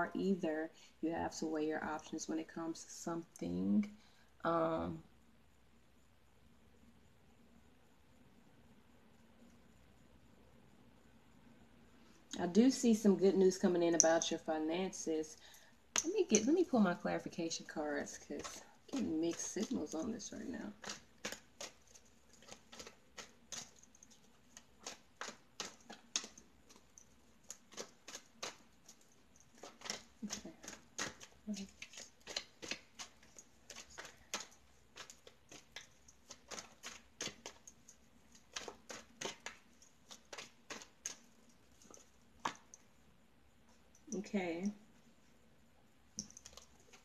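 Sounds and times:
cards being shuffled: 20.8 - 23.7, 29.6 - 37.6, 38.4 - 41.3.

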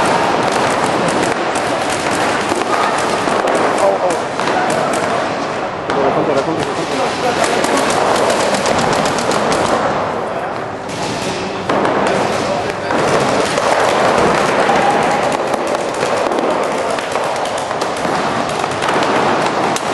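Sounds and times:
paintball markers firing: 0.0 - 5.3, 5.9 - 10.0, 10.9 - 19.9.

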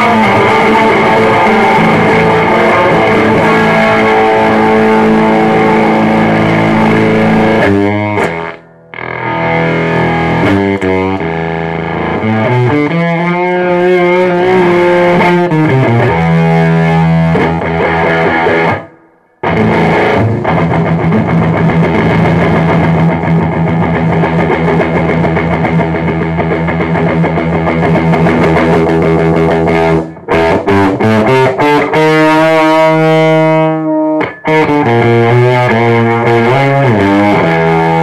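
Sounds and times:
distorted electric guitar chords: 0.0 - 38.0.

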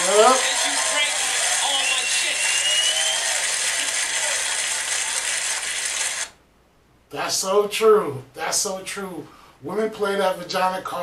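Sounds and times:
crowd laughter: 0.0 - 5.7
audience clapping: 0.0 - 6.3.

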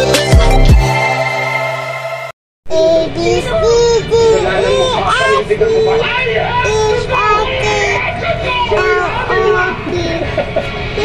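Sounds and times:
music: 0.0 - 2.4
child singing: 2.7 - 10.4.

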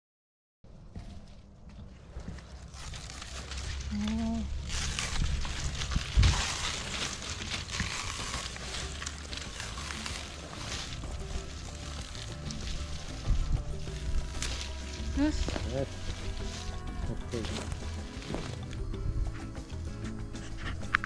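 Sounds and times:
palm leaves rustling and crackling: 1.0 - 21.0
background music: 3.0 - 21.0.

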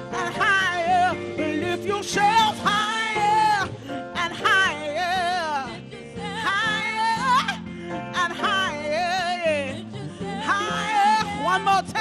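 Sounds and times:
live soul band playing: 0.0 - 12.0.

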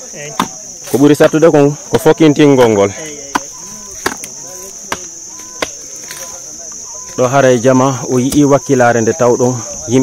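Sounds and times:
crickets chirping: 0.0 - 10.0
digging tool striking earth: 0.2 - 1.1, 2.5 - 6.4.

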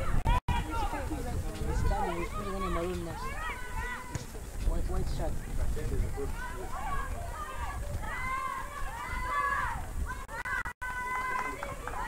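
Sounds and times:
people talking: 0.0 - 8.6.

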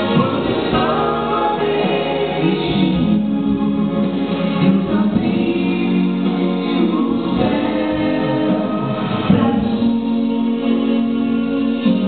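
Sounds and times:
vocal trio singing in harmony: 0.0 - 12.0.

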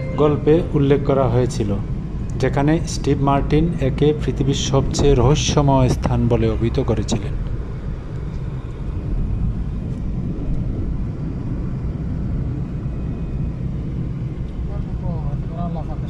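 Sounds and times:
car engine and road noise: 0.0 - 16.0.

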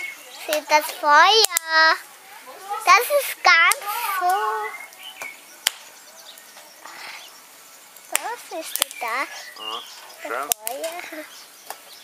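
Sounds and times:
fire crackling in a grill: 0.0 - 12.0
sharp pop from fire: 5.2 - 6.4, 8.1 - 9.1.

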